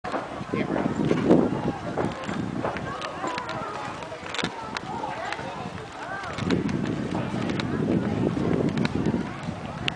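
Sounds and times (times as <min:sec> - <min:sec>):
faint voices: 0:00.0 - 0:09.9
footsteps on wooden planks: 0:00.1 - 0:09.9.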